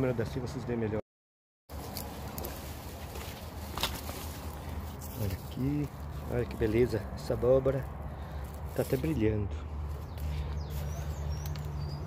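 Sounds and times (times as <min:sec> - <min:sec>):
outdoor background noise: 0:00.0 - 0:01.0, 0:01.7 - 0:12.0.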